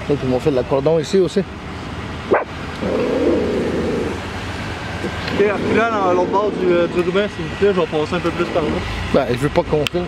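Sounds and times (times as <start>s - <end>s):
dog barking: 2.3s - 2.5s.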